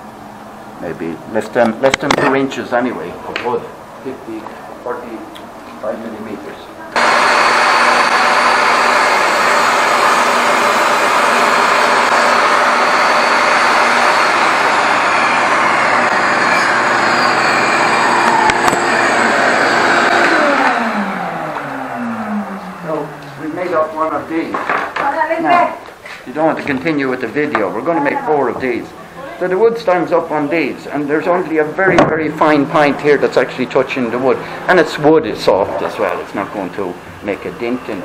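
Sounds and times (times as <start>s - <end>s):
table saw winding down: 7.0s - 24.3s
table saw running: 7.0s - 25.0s, 31.2s - 38.0s.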